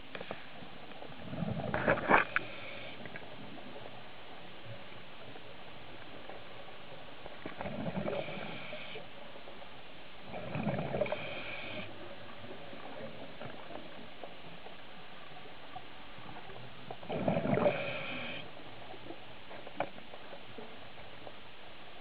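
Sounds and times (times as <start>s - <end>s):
steady hiss: 0.0s - 17.0s, 17.6s - 22.0s.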